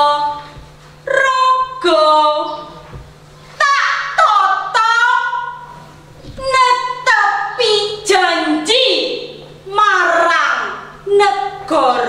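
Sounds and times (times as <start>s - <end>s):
woman reciting poetry sing-song: 0.0s - 3.0s, 3.6s - 12.0s.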